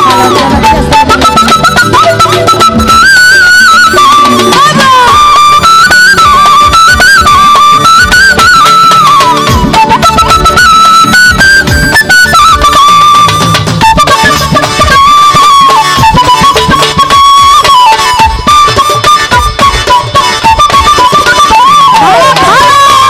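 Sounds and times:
bamboo flute folk melody: 0:00.0 - 0:23.0
rhythmic percussion: 0:00.0 - 0:23.0.

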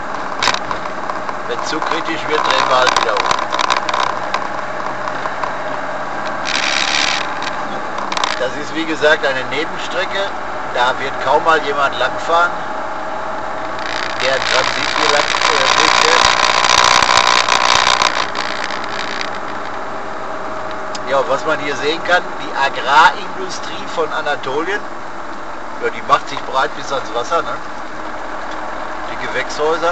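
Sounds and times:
vehicle engine and road noise: 0:00.0 - 0:29.9.

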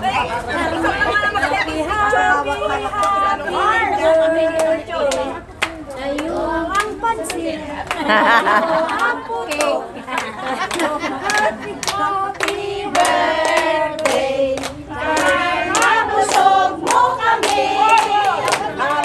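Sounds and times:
women singing together: 0:00.0 - 0:19.0
rhythmic clapping: 0:01.9 - 0:19.0
laughter: 0:07.9 - 0:11.8.

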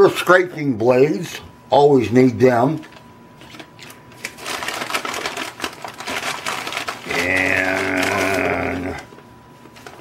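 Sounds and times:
paper bag rustling and crinkling: 0:02.8 - 0:10.0.

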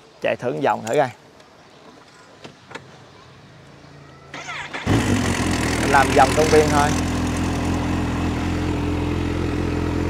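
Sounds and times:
starter motor cranking: 0:04.4 - 0:07.4
motorcycle engine idling: 0:04.4 - 0:10.0.

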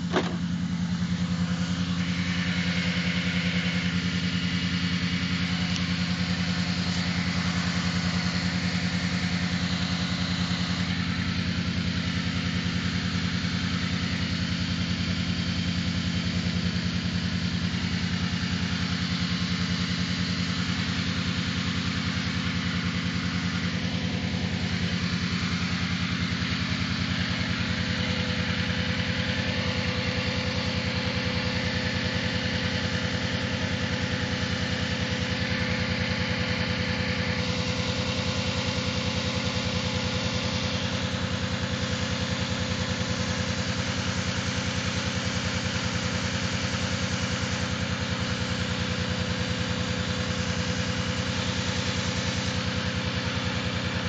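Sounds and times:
car engine idling: 0:00.0 - 0:54.0
hiss: 0:38.7 - 0:54.0.

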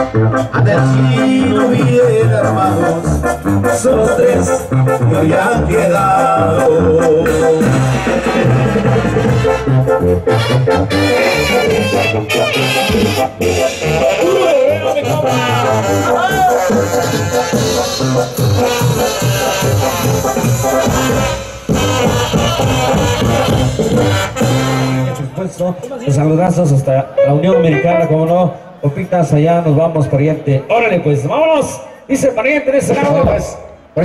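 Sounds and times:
drums: 0:00.0 - 0:25.2
brass band playing: 0:00.0 - 0:25.6, 0:27.0 - 0:28.4
tuba bass line: 0:00.0 - 0:28.7.

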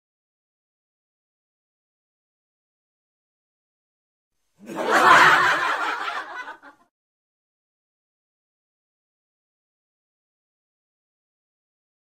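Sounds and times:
burst of laughter: 0:04.6 - 0:06.9.

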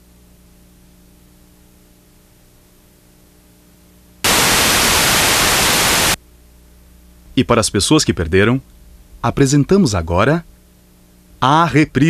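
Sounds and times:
television static hiss: 0:04.2 - 0:12.0.

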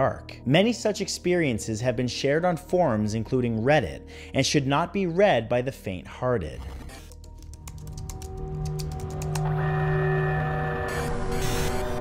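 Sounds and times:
rapid keyboard typing: 0:06.6 - 0:09.5.

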